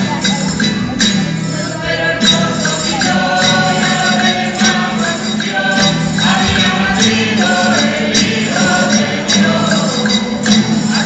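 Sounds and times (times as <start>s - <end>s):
group singing a carol: 0.0s - 11.0s
guitars playing: 0.0s - 11.0s.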